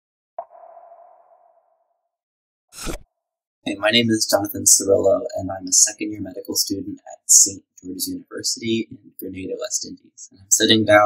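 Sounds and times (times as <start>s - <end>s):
struck ringing tone: 0.4s - 2.1s.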